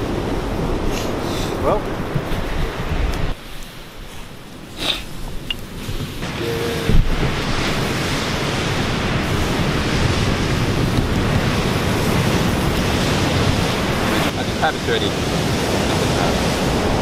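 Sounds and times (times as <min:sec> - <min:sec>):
steady rushing noise: 0:00.0 - 0:17.0.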